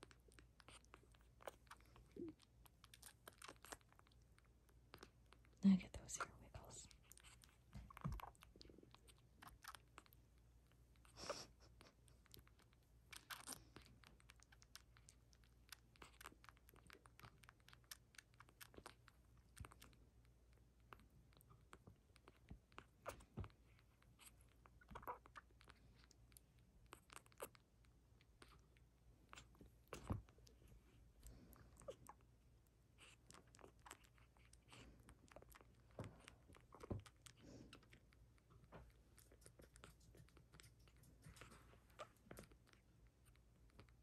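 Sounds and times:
kitten suckling on bottle nipple: 0:00.0 - 0:44.0.

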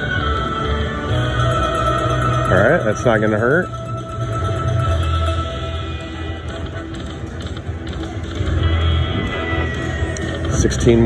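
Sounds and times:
slot machine bonus music: 0:01.1 - 0:07.3
slot machine sound effects: 0:01.1 - 0:07.8.

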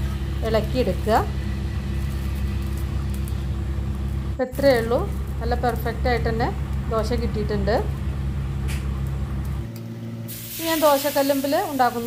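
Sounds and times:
low machine hum: 0:00.0 - 0:12.0
food sizzling in a skillet: 0:10.3 - 0:12.0.

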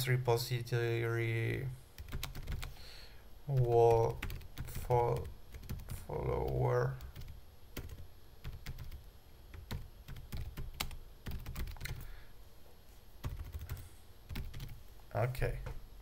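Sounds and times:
computer keyboard typing: 0:02.0 - 0:02.7, 0:03.5 - 0:12.0, 0:13.2 - 0:14.8.

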